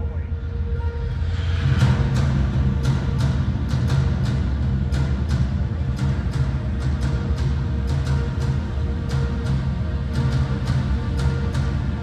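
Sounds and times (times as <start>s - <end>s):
loud live music: 1.7s - 12.0s.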